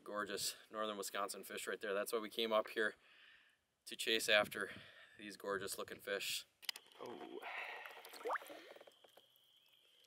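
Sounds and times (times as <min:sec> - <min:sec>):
small splashes and gurgling: 0:06.9 - 0:09.0.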